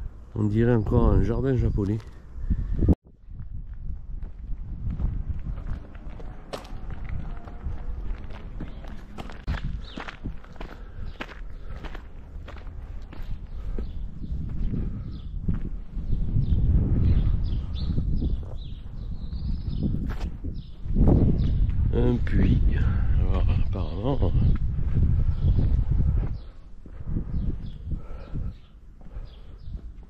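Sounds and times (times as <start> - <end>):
low microphone rumble: 2.2 - 30.0
footsteps walking: 3.4 - 14.8, 25.6 - 27.1, 29.0 - 30.0.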